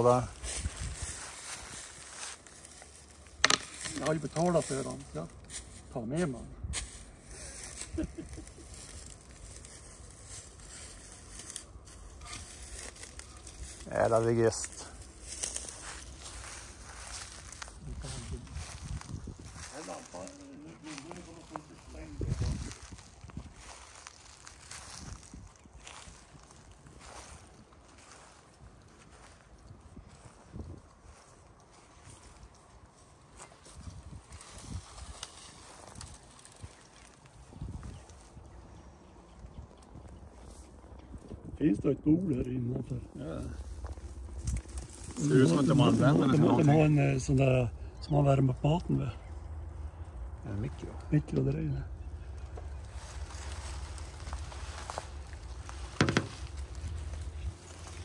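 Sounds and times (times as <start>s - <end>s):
footsteps on dry grass: 0.0s - 41.6s, 42.8s - 58.0s.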